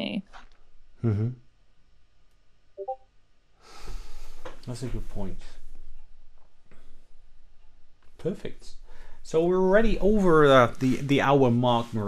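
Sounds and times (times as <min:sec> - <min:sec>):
breath drawn in: 0:03.6 - 0:04.5.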